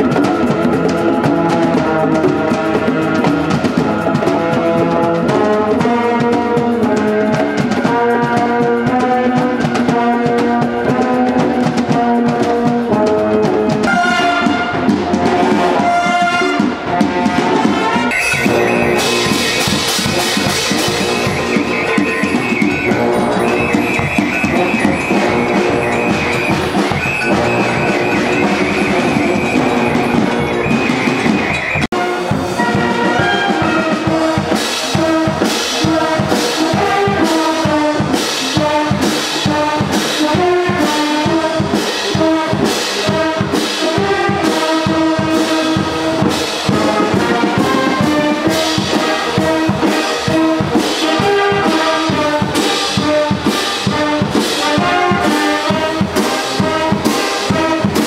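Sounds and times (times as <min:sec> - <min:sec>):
steady drum beat: 0:00.0 - 0:58.0
wind band playing: 0:00.0 - 0:58.0.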